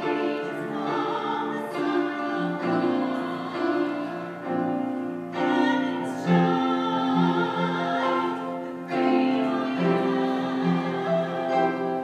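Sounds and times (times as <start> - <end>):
two women singing a duet: 0.0 - 4.7, 5.4 - 12.0.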